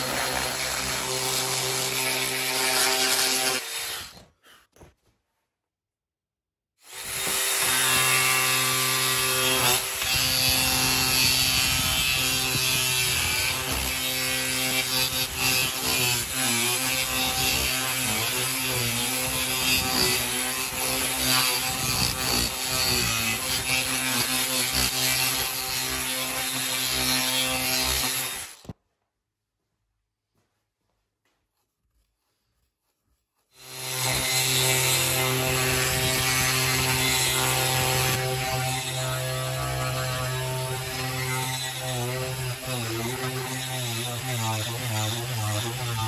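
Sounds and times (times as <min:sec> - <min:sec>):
angle grinder grinding wood: 0:00.0 - 0:04.4, 0:06.9 - 0:28.7, 0:33.5 - 0:46.0.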